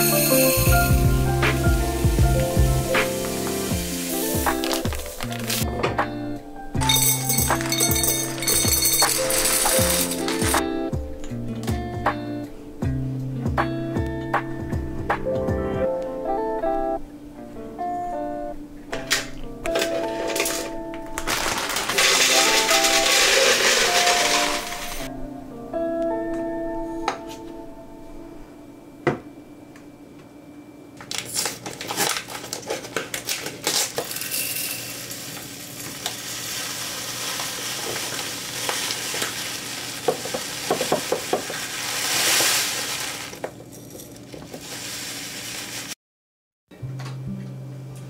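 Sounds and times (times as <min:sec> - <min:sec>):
background music: 0:00.0 - 0:29.1
pasta rattling into glass jar: 0:06.8 - 0:10.6, 0:19.8 - 0:25.1, 0:31.1 - 0:45.9.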